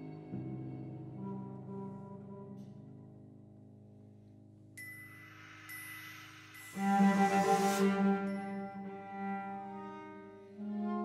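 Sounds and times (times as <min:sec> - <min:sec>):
string trio bowing held notes: 0:06.6 - 0:11.0.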